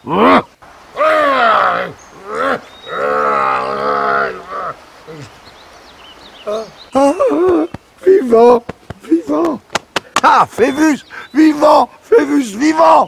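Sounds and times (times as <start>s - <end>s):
loud drawn-out cries: 0.0s - 5.2s.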